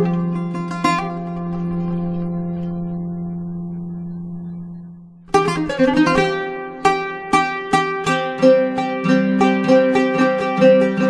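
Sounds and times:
oud chord ringing: 0.0 - 9.2.

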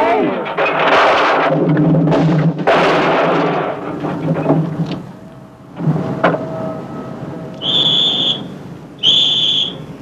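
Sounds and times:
high-pitched whistle blasts: 7.6 - 9.9.

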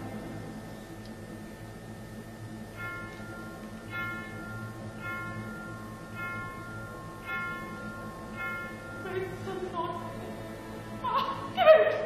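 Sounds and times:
quiet orchestral music: 0.0 - 12.0
bell-like notes: 2.6 - 12.0.

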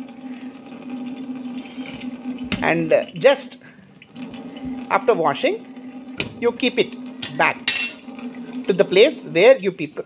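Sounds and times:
water running from tap: 0.0 - 10.0
water jet hissing: 0.1 - 9.4.

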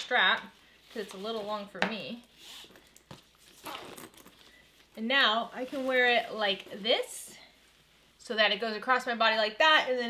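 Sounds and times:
small handling sounds: 0.0 - 8.0
bag strap rustling through adjuster: 2.4 - 4.9.

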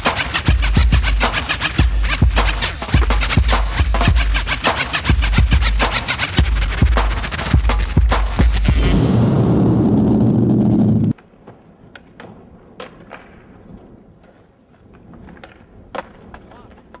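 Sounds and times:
skateboard wheels rolling on asphalt: 10.7 - 17.0
skateboard clacking on pavement: 11.1 - 17.0.

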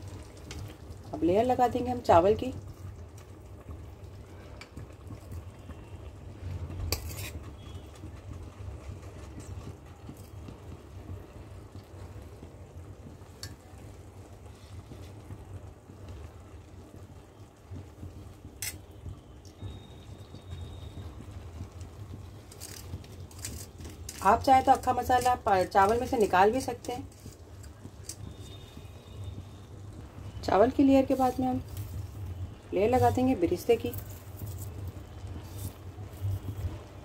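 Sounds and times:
metal spoon clinking on pot: 6.9 - 7.4, 18.6 - 18.8
spoon scraping rice in pot: 6.9 - 7.8, 22.5 - 28.2, 31.1 - 32.0.

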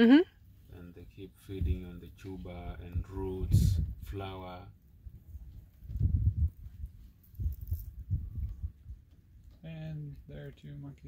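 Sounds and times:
low muffled rumbling thumps: 1.0 - 9.0.

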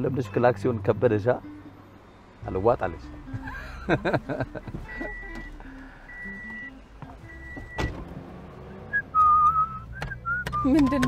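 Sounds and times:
soft background music: 0.0 - 9.1
person whistling: 8.9 - 11.0.

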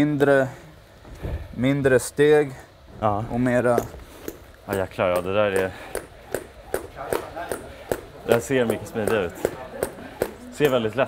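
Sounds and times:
skipping rope slapping mat: 4.7 - 11.0.

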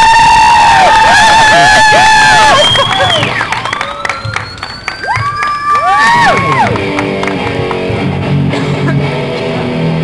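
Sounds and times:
electric guitar playing lead: 6.7 - 10.0.

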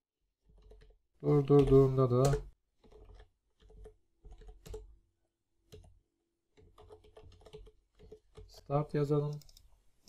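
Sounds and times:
faint keyboard typing: 0.4 - 5.0, 5.6 - 9.8.

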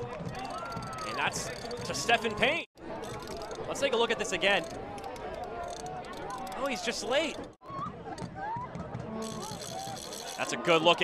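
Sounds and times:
low crowd murmur: 0.0 - 11.0.

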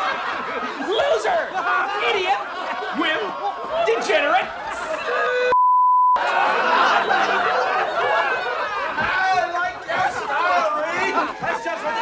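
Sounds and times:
people laughing: 0.0 - 5.5, 6.2 - 12.0
censor beep: 5.5 - 6.2.

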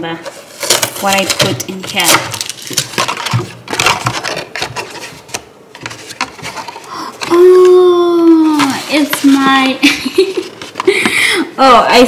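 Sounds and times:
paper bag rustling: 0.2 - 7.6, 8.2 - 10.9.

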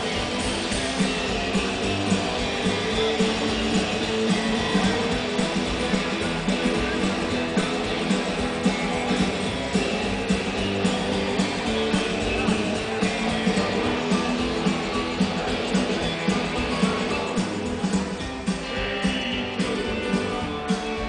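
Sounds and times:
drums: 0.0 - 21.0
strummed guitars: 0.0 - 21.0
upright bass: 0.0 - 21.0.

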